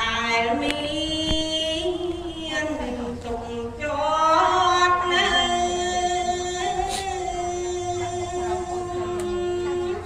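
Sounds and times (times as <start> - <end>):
woman chanting over a microphone: 0.0 - 10.0.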